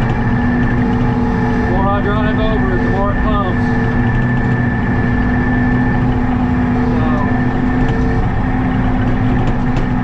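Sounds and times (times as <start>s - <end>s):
diesel engine running: 0.0s - 10.0s
steady whine: 0.0s - 10.0s.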